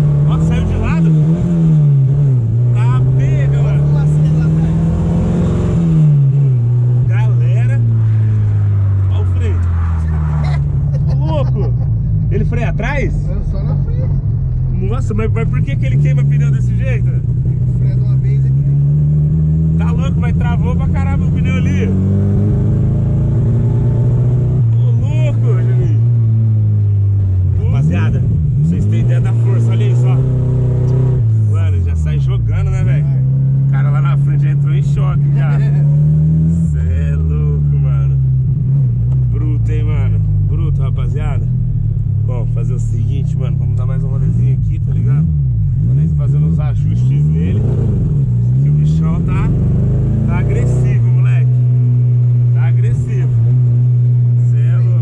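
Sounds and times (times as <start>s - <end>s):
car engine revving from inside: 0.0s - 42.1s, 43.0s - 55.0s.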